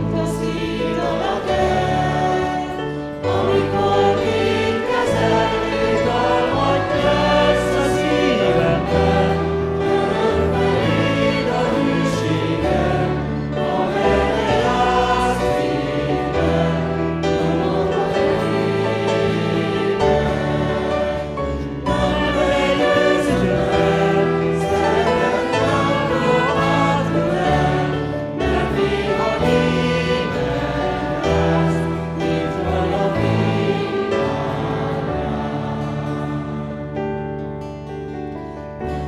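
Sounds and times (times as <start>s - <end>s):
group singing a hymn: 0.0s - 37.4s
acoustic guitar: 0.0s - 39.0s.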